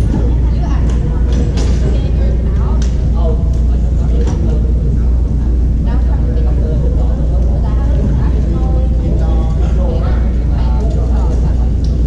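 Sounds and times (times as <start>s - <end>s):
indistinct voices in a hall: 0.0s - 12.0s
loud low rumble: 0.0s - 12.0s.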